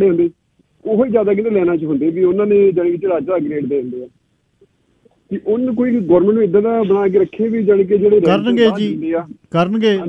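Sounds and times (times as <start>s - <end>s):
man speaking over telephone: 8.2s - 10.0s.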